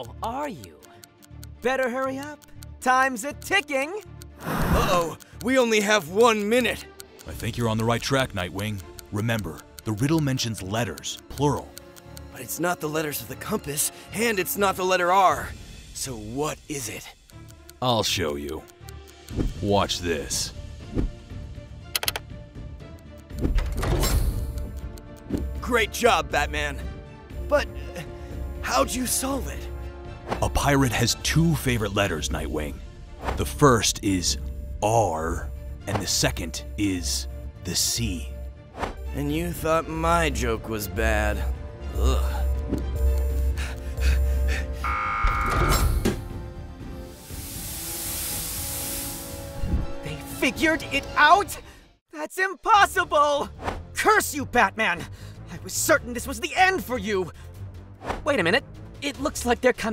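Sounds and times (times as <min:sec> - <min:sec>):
background music: 0:00.0 - 0:59.9
button clicks: 0:21.9 - 0:22.3
gas hissing out: 0:46.9 - 0:49.9.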